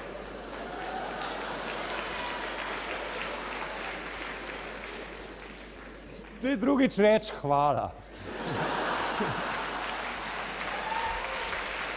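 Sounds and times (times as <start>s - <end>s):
audience applauding: 0.0s - 6.7s, 8.4s - 11.9s.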